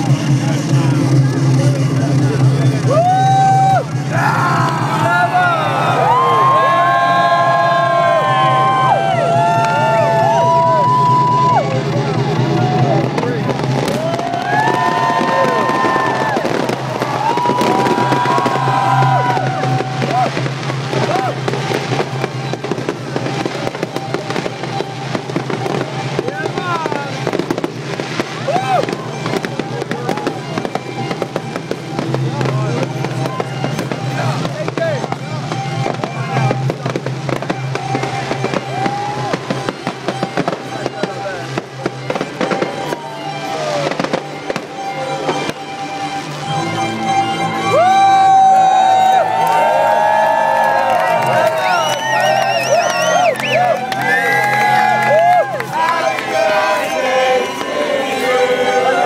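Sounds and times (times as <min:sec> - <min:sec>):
fireworks crackling and banging: 0:00.0 - 0:46.6, 0:47.7 - 0:59.0
music: 0:00.0 - 0:59.0
people's voices: 0:00.0 - 0:59.0.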